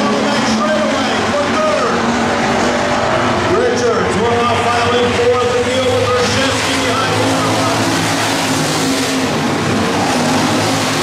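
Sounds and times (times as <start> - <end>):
race car engines: 0.0 - 11.0.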